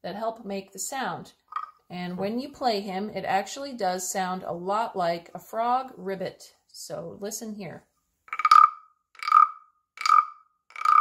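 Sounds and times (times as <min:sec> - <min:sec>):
wooden frog rasp croaks: 0:01.5 - 0:01.8, 0:08.3 - 0:11.0.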